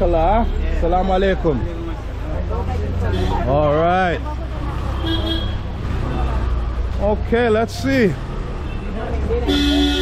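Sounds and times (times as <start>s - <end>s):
street traffic rumble: 0.0s - 10.0s
vehicle horn toot: 9.5s - 10.0s.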